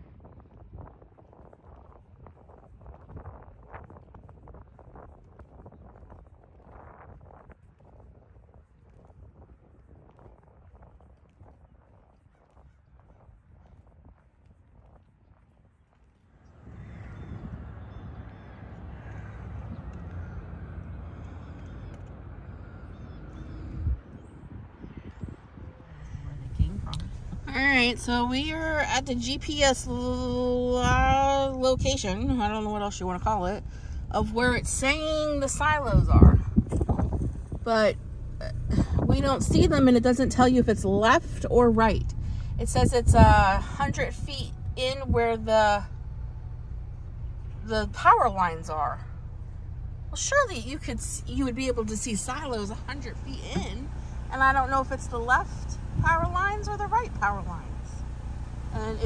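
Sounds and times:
car engine rumbling: 0.0s - 59.0s
footsteps on asphalt: 0.2s - 23.4s, 24.0s - 31.6s.

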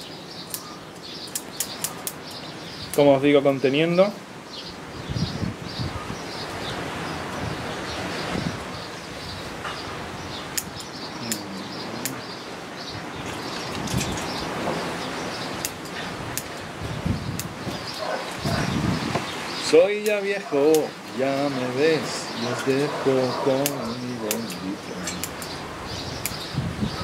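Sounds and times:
leafy twigs rustling: 0.0s - 27.0s
small birds chirping: 0.0s - 27.0s
scissors snipping: 1.3s - 2.2s, 23.6s - 25.5s.

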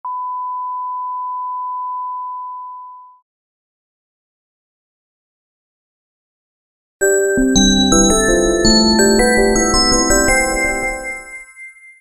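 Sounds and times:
steady test tone beep: 0.1s - 3.1s.

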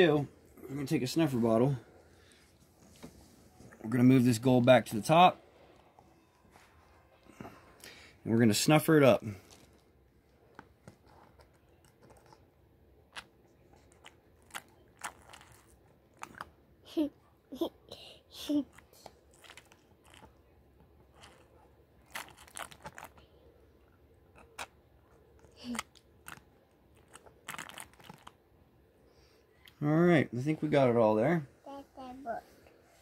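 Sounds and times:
faint crinkling and clicking: 9.3s - 12.5s
plastic bottle squeezed in water: 19.2s - 20.4s, 21.1s - 23.2s, 25.6s - 28.4s.

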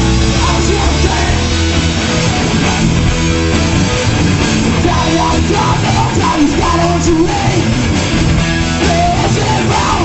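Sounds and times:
bass guitar: 0.0s - 10.0s
drum kit: 0.0s - 10.0s
electric guitars: 0.0s - 10.0s.

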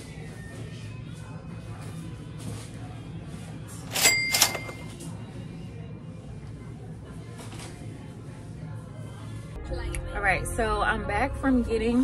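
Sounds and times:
quiet background music: 0.0s - 12.0s
cash register cha-ching: 3.9s - 5.0s.

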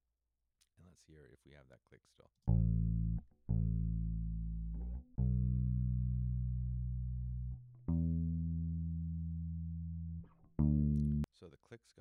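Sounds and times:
bass guitar notes: 2.5s - 11.3s.

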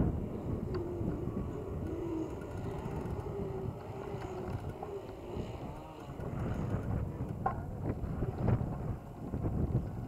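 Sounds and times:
faint wavering hum: 0.0s - 10.0s
wind buffeting microphone: 0.0s - 10.0s.

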